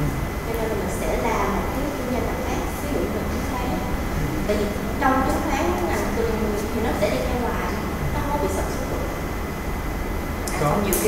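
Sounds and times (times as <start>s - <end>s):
steady low rumble: 0.0s - 10.9s
person speaking quietly: 4.2s - 4.5s.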